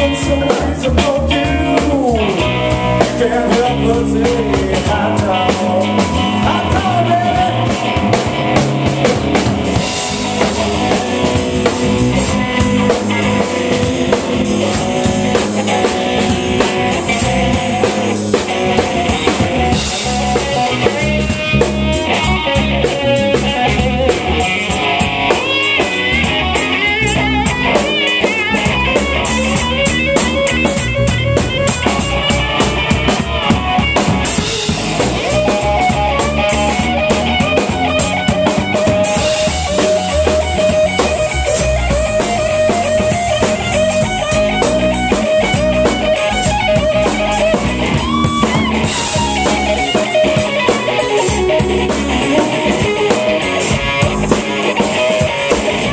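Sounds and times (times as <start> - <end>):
drum kit: 0.0 - 55.9
electric bass: 0.0 - 55.9
electric guitar soloing: 0.0 - 55.9.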